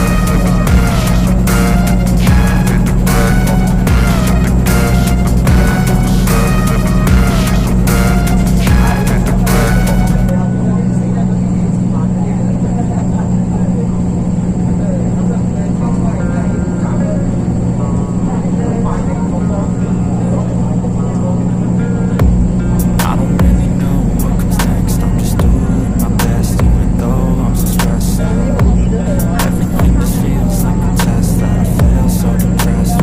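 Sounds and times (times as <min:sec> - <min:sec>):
road noise: 0:00.0 - 0:33.0
vehicle engine drone: 0:00.0 - 0:33.0.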